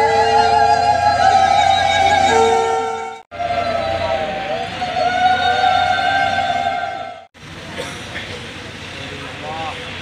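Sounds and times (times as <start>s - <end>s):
sustained high musical tone: 0.0s - 7.3s.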